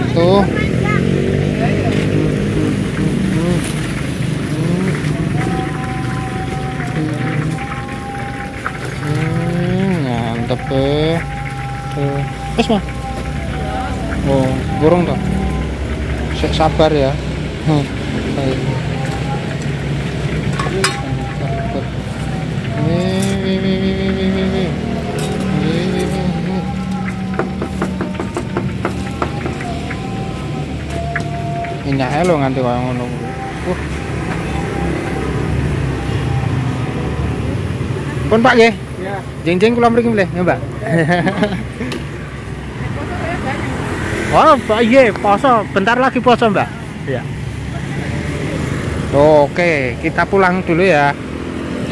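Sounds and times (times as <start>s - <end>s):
background voice or music: 0.0s - 37.7s
low engine rumble: 0.0s - 51.9s.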